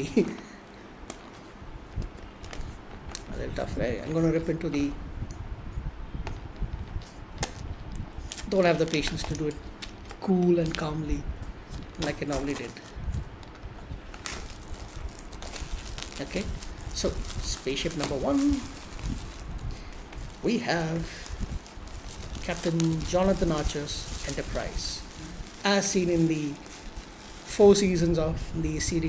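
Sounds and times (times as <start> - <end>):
faint background hiss: 0.0 - 29.0
plastic wrap crinkling: 8.2 - 11.0, 11.7 - 13.0, 14.0 - 29.0.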